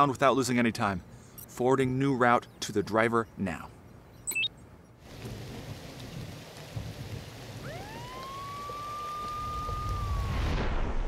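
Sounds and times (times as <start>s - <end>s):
heavy rain: 5.0s - 11.0s
ambulance siren wailing: 7.6s - 10.5s.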